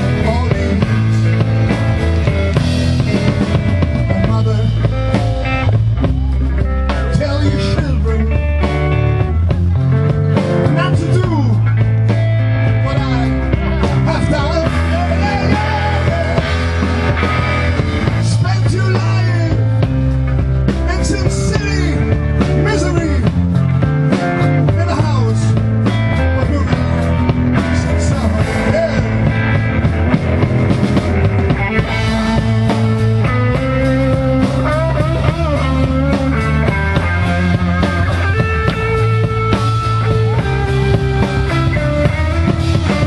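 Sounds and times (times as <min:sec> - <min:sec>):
bass guitar: 0:00.0 - 0:43.0
electric guitar lead with bends: 0:00.0 - 0:43.0
steady rhythm: 0:00.0 - 0:43.0.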